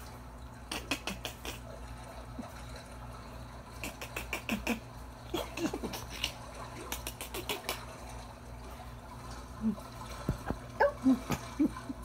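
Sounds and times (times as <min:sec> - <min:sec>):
low steady hum: 0:00.0 - 0:12.0
water trickling and bubbling: 0:00.0 - 0:12.0.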